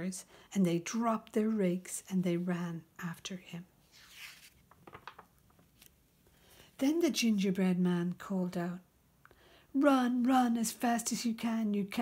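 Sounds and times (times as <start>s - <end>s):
book handling rustles: 3.8s - 6.0s
paper page turning: 3.8s - 6.0s.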